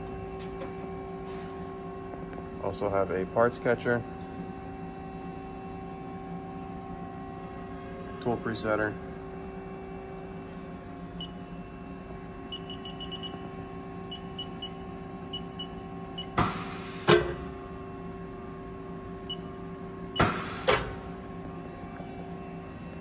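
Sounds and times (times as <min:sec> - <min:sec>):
low electrical hum: 0:00.0 - 0:16.4, 0:17.3 - 0:23.0.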